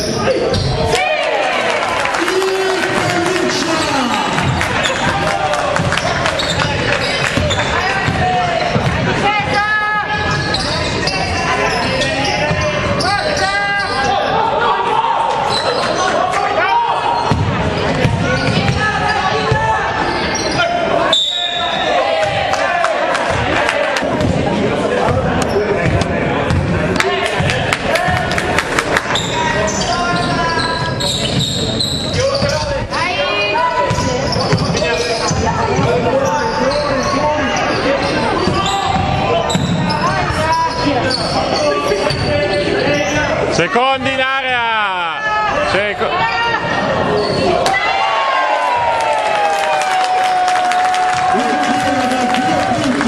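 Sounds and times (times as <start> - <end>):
sneakers squeaking: 0.0 - 1.0, 3.0 - 22.5, 23.3 - 28.2, 29.0 - 44.1, 46.1 - 48.0
basketball bouncing: 5.7 - 9.2, 17.3 - 18.8, 23.3 - 28.2.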